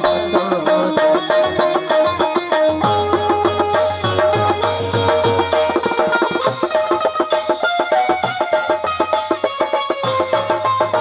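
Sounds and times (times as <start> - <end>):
low regular drum beat: 0.0 - 11.0
plucked string notes: 0.0 - 11.0.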